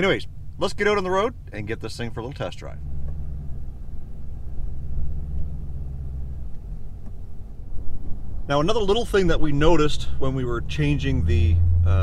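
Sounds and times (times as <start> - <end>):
car engine rumble in cabin: 0.0 - 12.0.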